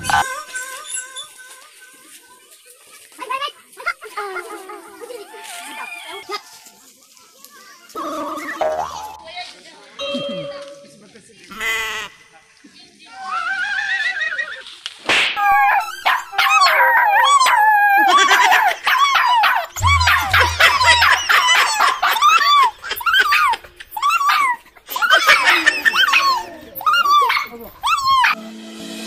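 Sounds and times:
high-pitched dog-like yelping: 0:15.4 - 0:28.4
low thuds: 0:19.8 - 0:21.6
comic sound effect: 0:19.8 - 0:22.1
rising and falling wail: 0:19.8 - 0:22.5.

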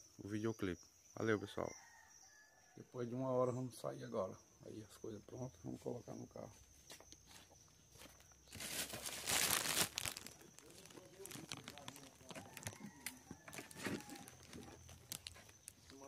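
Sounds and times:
rustling and crinkling: 0:06.6 - 0:16.0.

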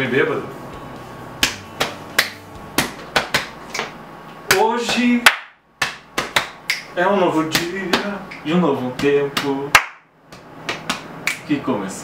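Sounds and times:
person clapping hands: 0:01.4 - 0:04.6, 0:05.2 - 0:06.9, 0:09.4 - 0:11.5.

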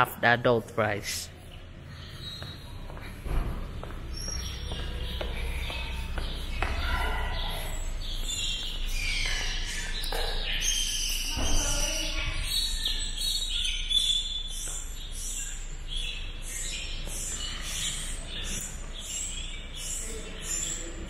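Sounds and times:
birds gliding calls: 0:00.9 - 0:21.0.

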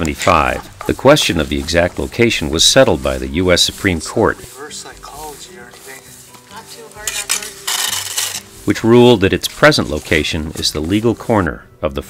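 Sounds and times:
broom sweeping pavement: 0:00.0 - 0:11.5.

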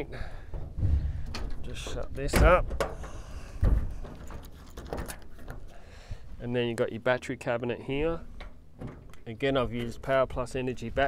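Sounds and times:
metal cabinet door thump: 0:00.6 - 0:04.2.

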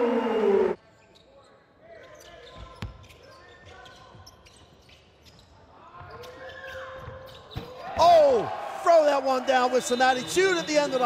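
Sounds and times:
sneakers squeaking: 0:00.8 - 0:08.0.

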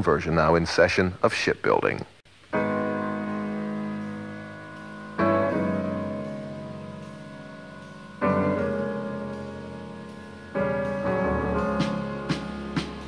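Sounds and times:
slow piano chords: 0:02.3 - 0:13.0.

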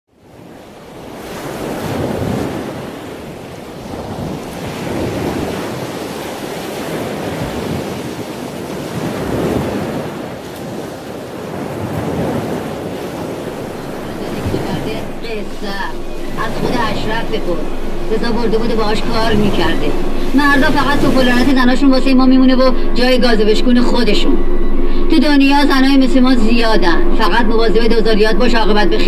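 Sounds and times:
waves breaking on a beach: 0:00.1 - 0:29.0.

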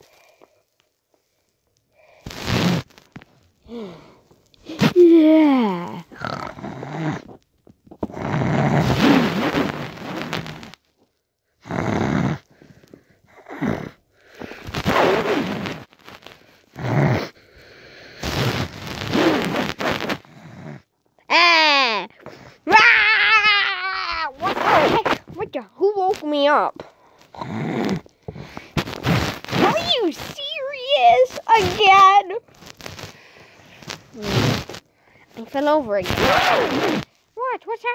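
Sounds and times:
child making breathy rasping noises: 0:03.7 - 0:07.4, 0:21.3 - 0:28.6, 0:29.5 - 0:32.4
child high wavering cries: 0:21.3 - 0:22.1, 0:22.7 - 0:24.8.

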